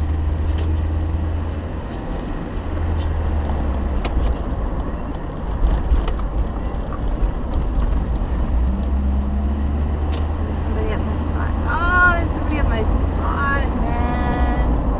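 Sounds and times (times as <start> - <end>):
low road rumble: 0.0 - 14.9.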